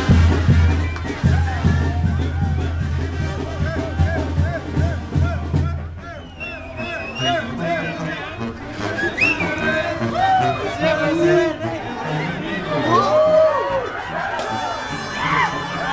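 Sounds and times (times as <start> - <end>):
drum beat: 0.0 - 6.0
brass band playing: 0.0 - 15.9
crowd voices and shouts: 0.0 - 15.9.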